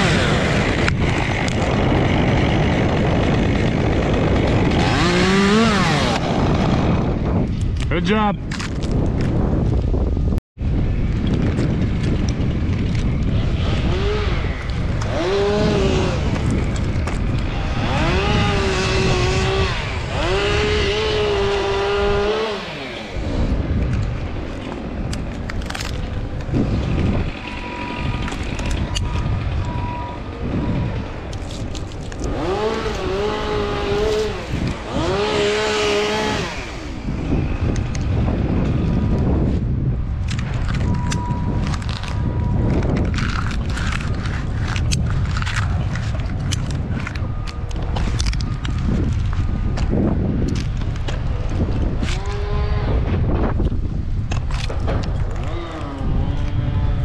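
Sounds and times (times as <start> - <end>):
chainsaw revving: 0.0 - 7.0, 13.2 - 23.5, 32.2 - 37.2, 52.0 - 53.0
wind rumble on microphone: 0.0 - 57.0.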